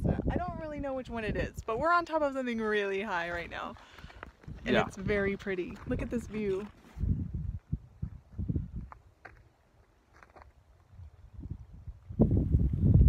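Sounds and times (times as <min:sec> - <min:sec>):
wind gusting on microphone: 0:00.0 - 0:09.4, 0:10.5 - 0:13.0.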